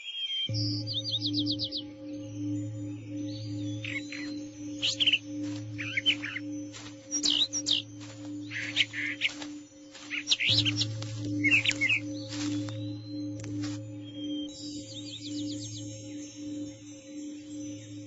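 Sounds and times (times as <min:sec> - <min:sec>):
birds chirping and twittering: 0:00.0 - 0:18.0
ambient music drone: 0:00.5 - 0:18.0.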